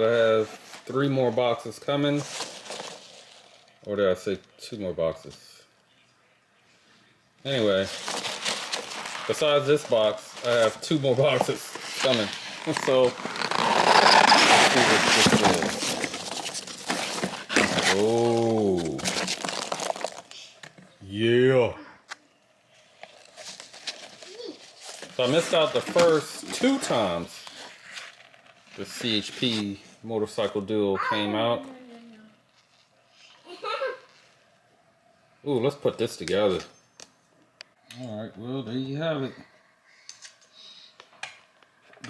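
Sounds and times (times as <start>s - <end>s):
plastic bag rustling: 2.1s - 3.7s, 7.5s - 20.6s, 22.8s - 29.6s.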